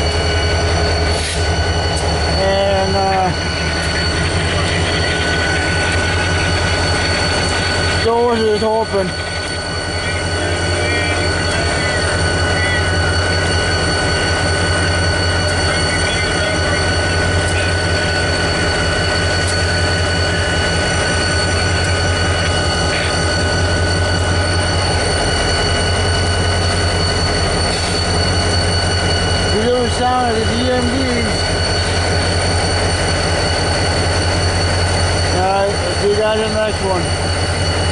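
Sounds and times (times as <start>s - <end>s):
diesel locomotive drone: 0.0s - 37.9s
high whining tones: 0.0s - 37.9s.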